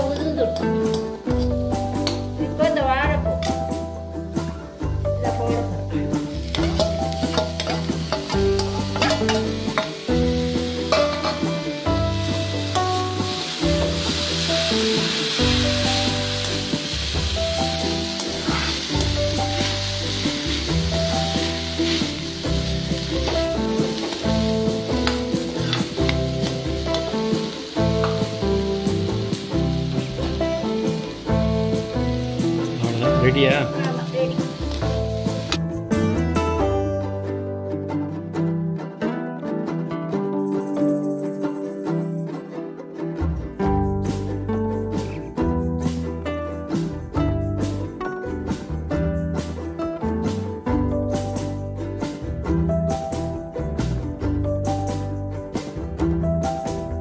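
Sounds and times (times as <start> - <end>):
background music: 0.0 - 57.0
frying sizzle: 5.2 - 35.7
ladle scraping and clicking on pan: 6.5 - 9.9.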